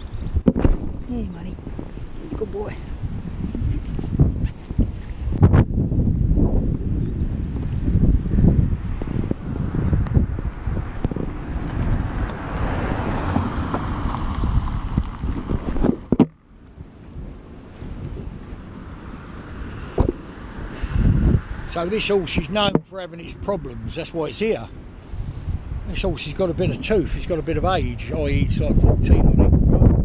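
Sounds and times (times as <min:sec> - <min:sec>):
wind buffeting camera microphone: 0:00.0 - 0:30.0.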